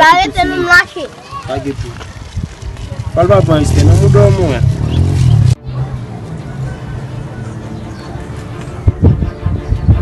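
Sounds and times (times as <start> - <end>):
heavy low rumble: 2.4 - 7.3.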